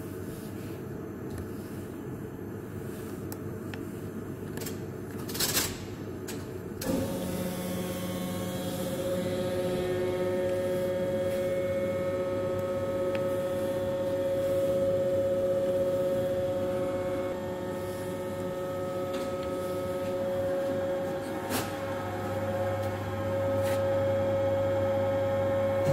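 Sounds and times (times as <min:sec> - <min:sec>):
machine motors humming and whining: 0:06.8 - 0:25.9.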